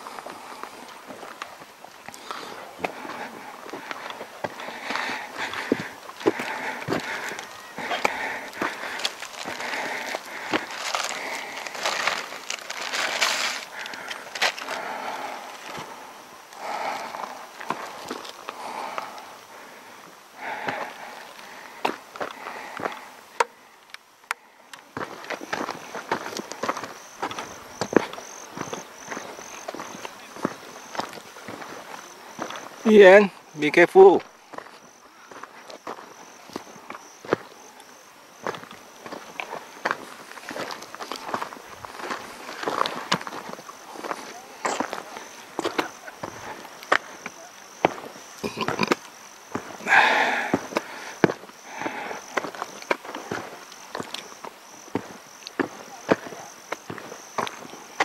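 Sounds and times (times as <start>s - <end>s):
footsteps on dry dirt: 0.0s - 23.6s, 24.4s - 58.0s
insect pulsing call: 0.0s - 58.0s.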